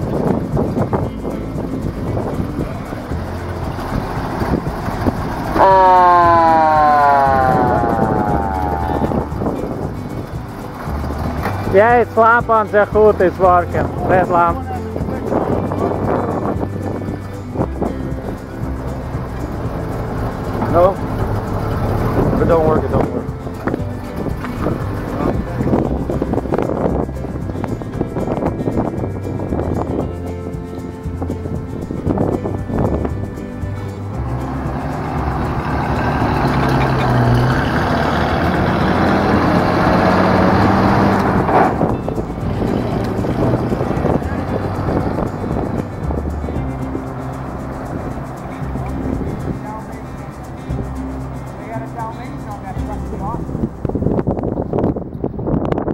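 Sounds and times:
fire engine driving off: 0.0 - 55.9.

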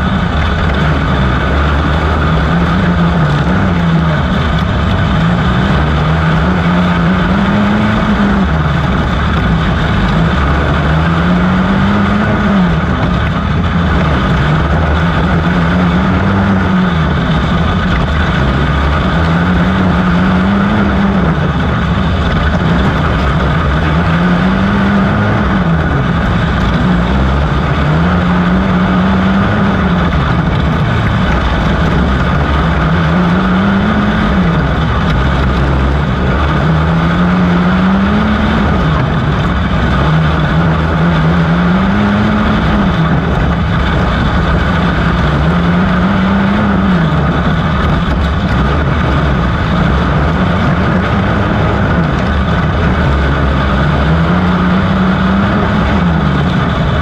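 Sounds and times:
kart engine revving: 0.0 - 57.0.

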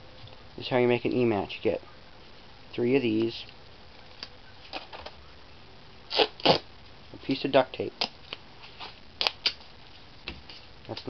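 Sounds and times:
duct tape ripping off roll: 6.1 - 6.7, 8.0 - 9.7.

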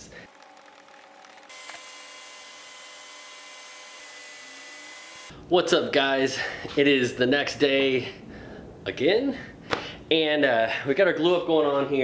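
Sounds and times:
small electric motor whirring: 0.2 - 5.3.

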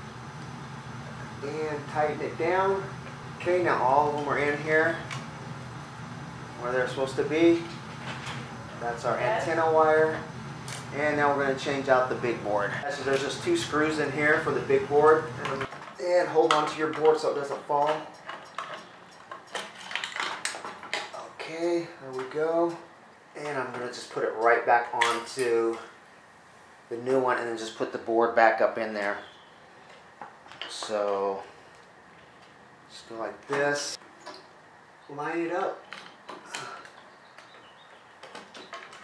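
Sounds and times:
plastic parts clicking and clattering: 17.8 - 21.1.

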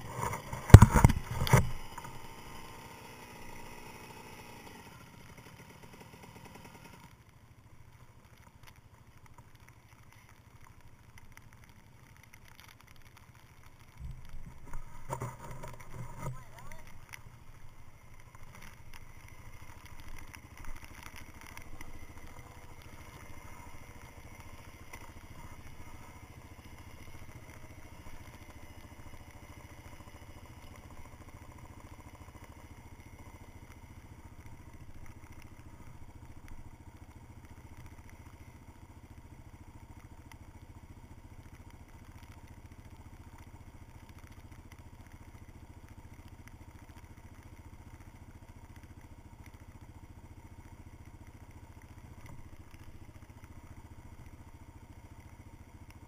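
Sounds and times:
dirt bike engine idling: 0.0 - 56.0.

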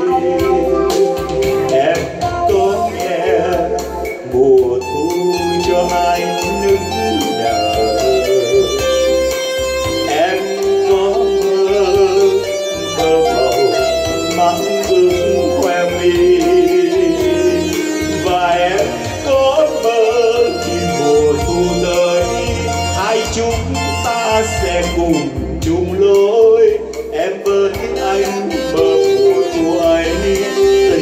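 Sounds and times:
electronic keyboard: 0.0 - 31.0
man singing into a microphone: 0.0 - 31.0
steady bass beat: 0.0 - 31.0.

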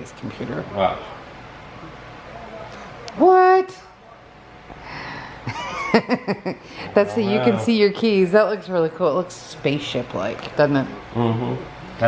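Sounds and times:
man laughing: 5.5 - 6.7.

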